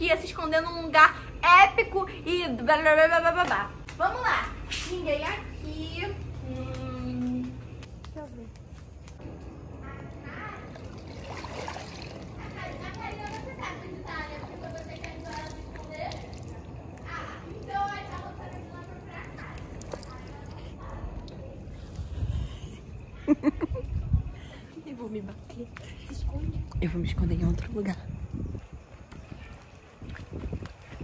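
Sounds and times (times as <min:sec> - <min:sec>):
indistinct talking: 0:12.3 - 0:21.8.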